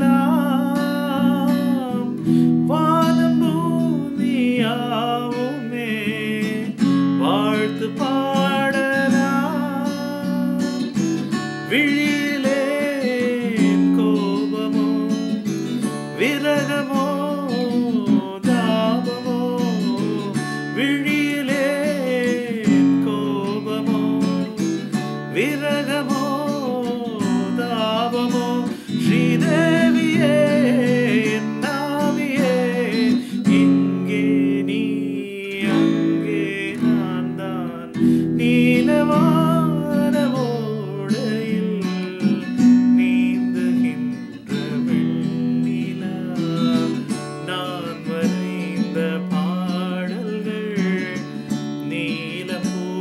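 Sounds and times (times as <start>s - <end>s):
acoustic guitar strumming: 0.0s - 53.0s
man singing: 0.0s - 53.0s.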